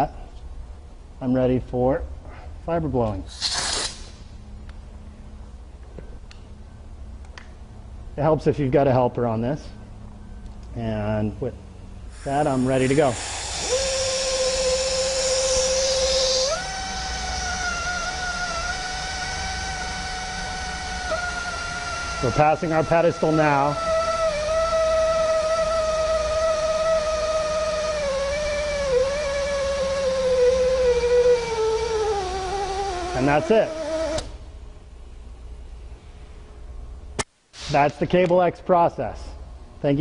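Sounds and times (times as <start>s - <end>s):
low steady hum: 0.0s - 40.0s
compressed air hissing: 3.2s - 4.4s, 12.0s - 34.4s
machine motor whine: 12.0s - 34.5s.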